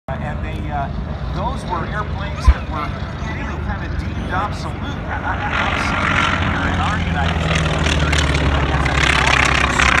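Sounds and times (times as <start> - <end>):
propeller plane engine droning: 0.1 - 10.0.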